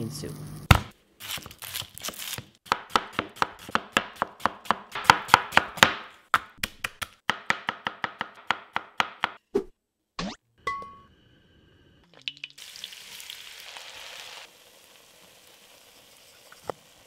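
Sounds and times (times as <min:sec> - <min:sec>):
knife chopping on cutting board: 0:00.7 - 0:09.4.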